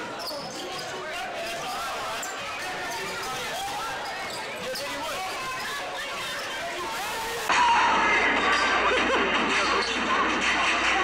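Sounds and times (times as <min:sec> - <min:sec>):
indistinct chatter of spectators: 0:00.0 - 0:11.0.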